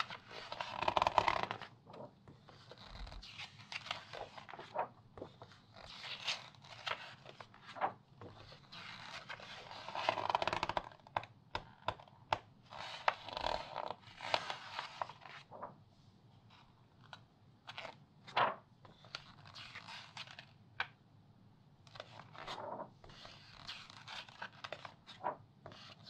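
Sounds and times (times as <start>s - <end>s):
paper rustling: 0.0s - 10.8s, 14.2s - 15.8s, 17.7s - 20.4s, 21.9s - 26.0s
crackling magazine pages: 0.0s - 15.8s, 16.5s - 20.9s, 21.9s - 26.0s
magazine page swishing: 18.3s - 18.6s.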